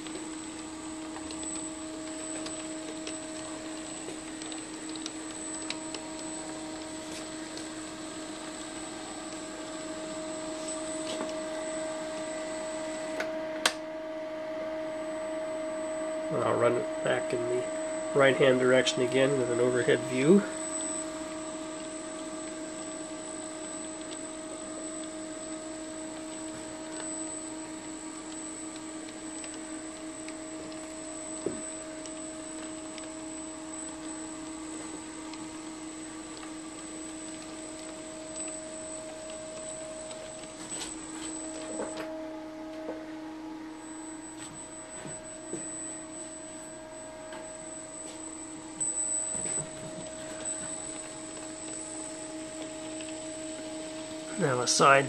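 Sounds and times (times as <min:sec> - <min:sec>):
model locomotive motors humming: 0:00.0 - 0:13.3, 0:16.4 - 0:55.0.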